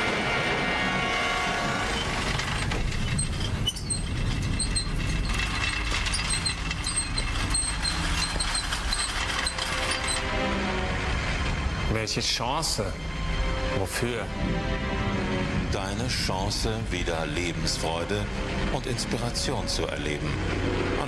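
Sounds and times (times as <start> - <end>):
low rumbling drone: 0.0 - 21.0.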